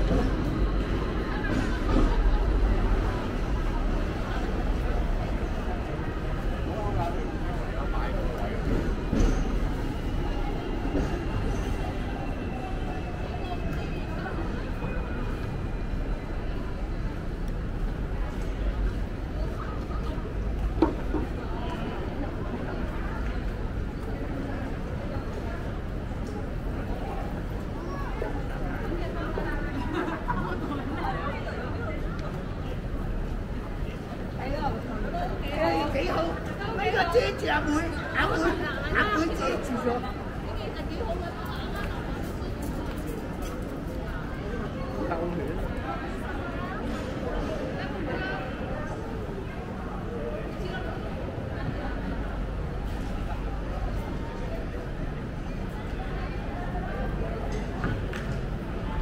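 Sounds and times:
murmur of people talking: 0:00.0 - 0:59.0
people chatting: 0:00.0 - 0:59.0.

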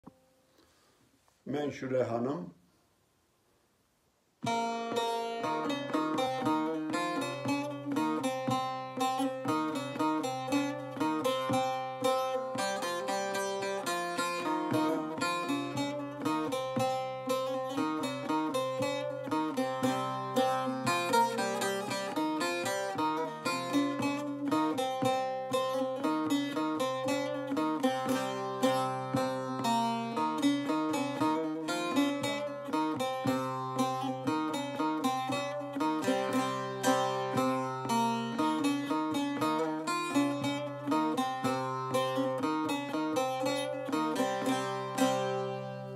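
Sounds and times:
long-necked lute fast melody: 0:04.4 - 0:45.9.

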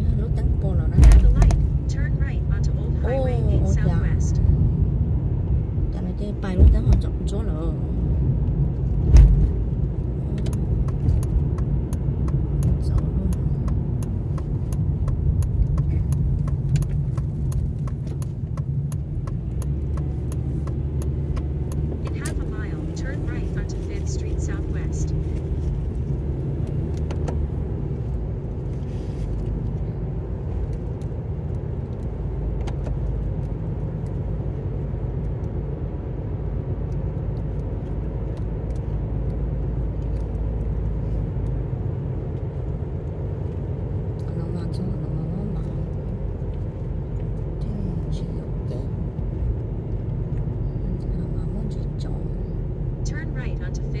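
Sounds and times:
car road and engine rumble: 0:00.0 - 0:54.0
light ticks: 0:10.4 - 0:22.4.

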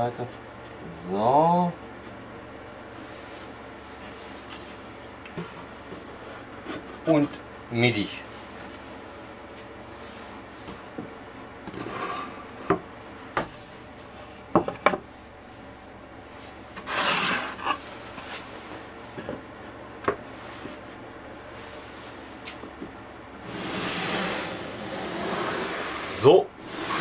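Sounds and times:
wood scraping on wood: 0:16.8 - 0:18.4, 0:23.4 - 0:27.0.

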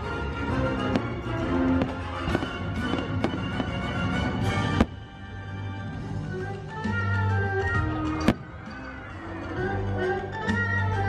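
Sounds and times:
orchestral music: 0:00.0 - 0:11.0
fireworks pops and bangs: 0:00.8 - 0:05.1.

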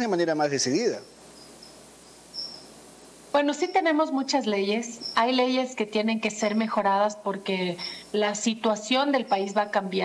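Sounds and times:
low hiss: 0:00.0 - 0:10.0
faint high-pitched chirps: 0:01.0 - 0:02.8, 0:03.5 - 0:06.8, 0:08.8 - 0:09.7.

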